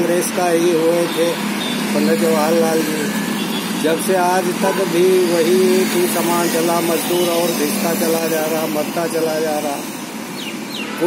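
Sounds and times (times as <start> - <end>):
man speaking: 0.0 - 3.2, 3.8 - 9.9.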